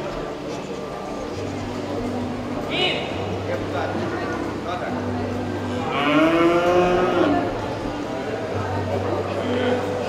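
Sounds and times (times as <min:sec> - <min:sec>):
cow mooing: 0:05.8 - 0:07.5.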